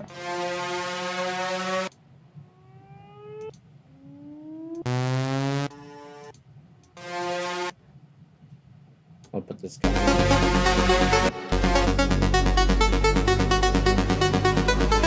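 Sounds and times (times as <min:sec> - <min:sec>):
synth tones sweeping upward: 0:00.0 - 0:06.3, 0:09.8 - 0:15.0.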